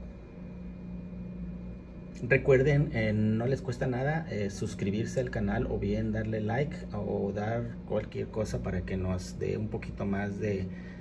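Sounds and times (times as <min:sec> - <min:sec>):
machine hum with faint hiss: 0:00.0 - 0:11.0.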